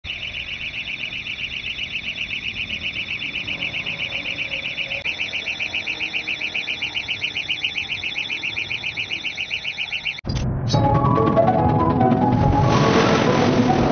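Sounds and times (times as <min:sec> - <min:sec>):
rapid electronic warning beeps: 0:00.1 - 0:10.2.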